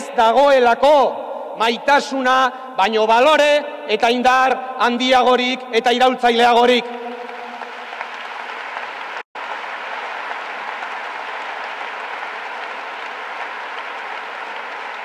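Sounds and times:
audience applauding: 6.8s - 15.0s.

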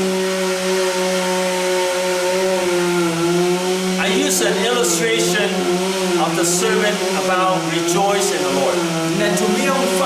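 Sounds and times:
motor droning: 0.0s - 10.0s.

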